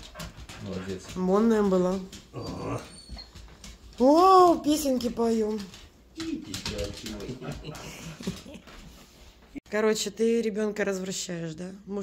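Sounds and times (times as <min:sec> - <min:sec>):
dog whining: 0:02.2 - 0:03.7.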